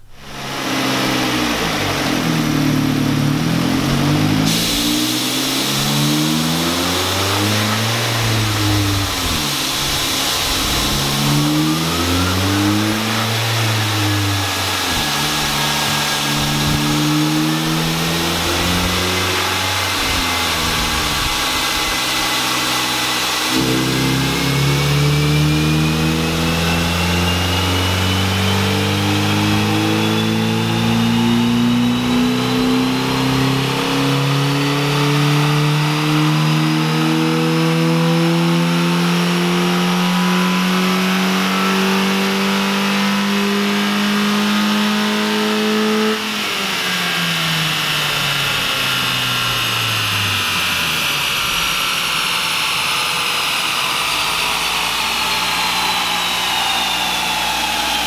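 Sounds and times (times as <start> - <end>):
car engine revving: 0.0 - 58.0
thin rising whine: 0.0 - 58.0.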